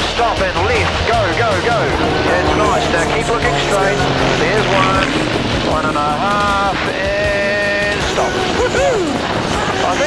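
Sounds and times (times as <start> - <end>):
biplane engine drone: 0.0 - 9.8
high voice singing long notes: 0.8 - 7.8.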